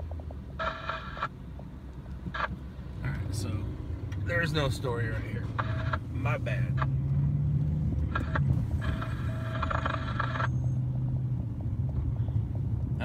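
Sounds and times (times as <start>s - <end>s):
car engine and road noise drone: 0.0s - 13.0s.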